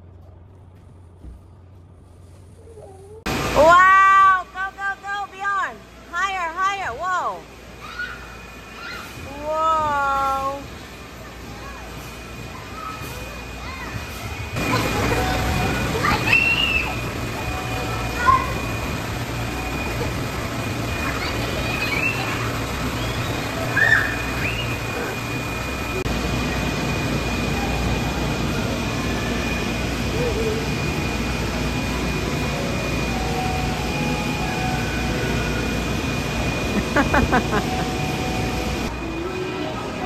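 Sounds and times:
background hum: 0.0 - 39.0
faint high whine: 7.2 - 40.0
children calling: 7.7 - 26.8.

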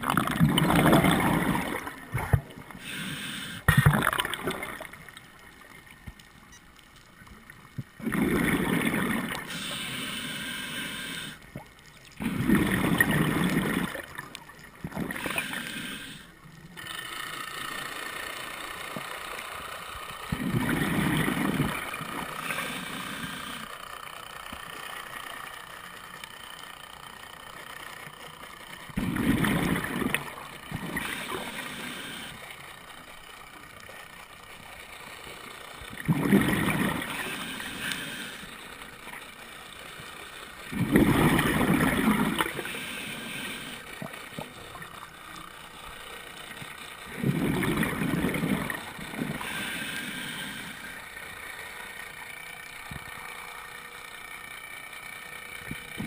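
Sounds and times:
regulator exhalation bubbles underwater: 0.0 - 2.9, 3.7 - 5.0, 7.8 - 9.6, 12.2 - 15.6, 20.3 - 22.6, 29.0 - 31.6, 35.9 - 38.1, 40.7 - 42.7, 47.1 - 50.2
underwater wash: 0.0 - 56.0.

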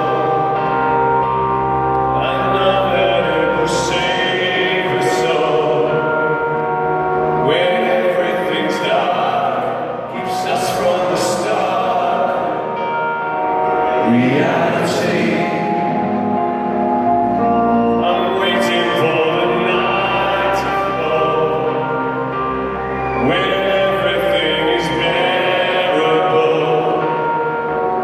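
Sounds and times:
men singing in harmony: 0.0 - 1.2, 2.0 - 6.7, 7.4 - 28.0
sustained synthesizer chords: 0.0 - 28.0.

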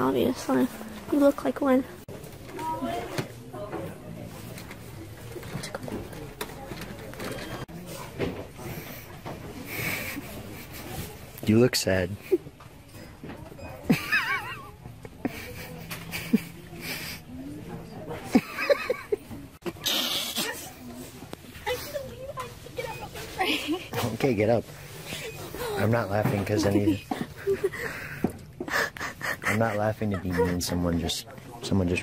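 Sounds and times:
store background noise: 0.0 - 32.0
woman's stifled laughter: 13.9 - 17.2, 26.7 - 30.7.

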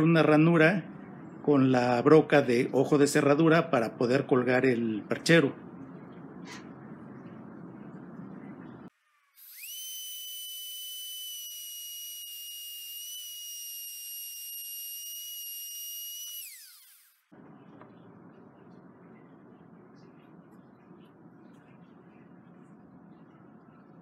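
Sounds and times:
router high-pitched whine: 9.3 - 17.3
router bit cutting wood: 9.4 - 17.2.

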